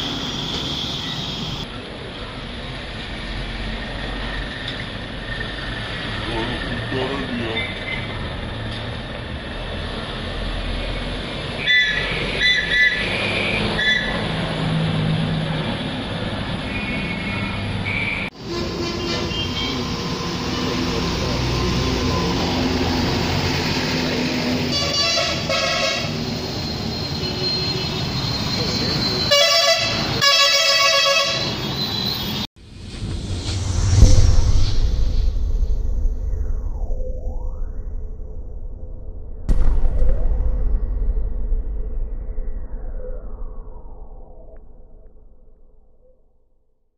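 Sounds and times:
diesel trucks passing: 0.0s - 33.4s
road traffic: 0.0s - 36.3s
horn honks: 18.4s - 19.9s, 24.7s - 26.2s, 29.3s - 31.7s
electronic whoosh: 32.6s - 46.5s.

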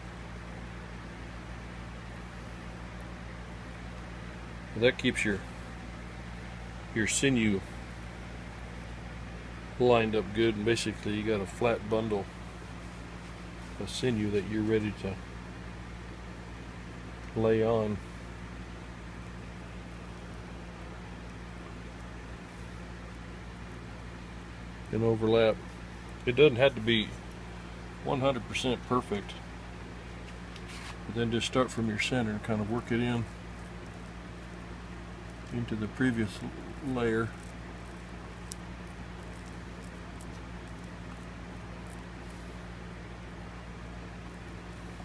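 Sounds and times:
low hum: 0.0s - 45.0s
small wet clicks and ticks: 32.4s - 42.4s.

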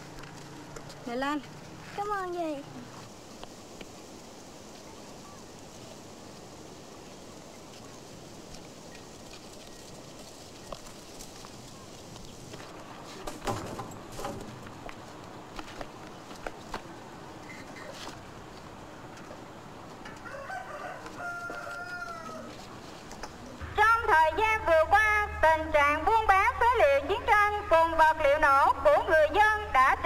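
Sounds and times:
faint rustling and clicks: 0.0s - 20.3s
rooster crowing faintly: 20.0s - 22.7s
steady low hum: 23.6s - 30.0s.

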